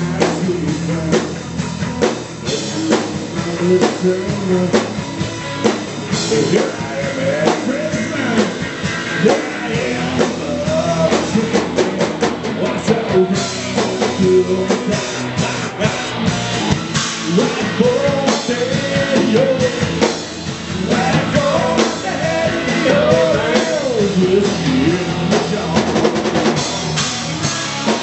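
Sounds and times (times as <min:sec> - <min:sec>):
man singing: 0:00.0 - 0:01.6, 0:02.4 - 0:26.7
drum and cymbal hits: 0:00.0 - 0:28.0
live rock band playing: 0:00.0 - 0:28.0.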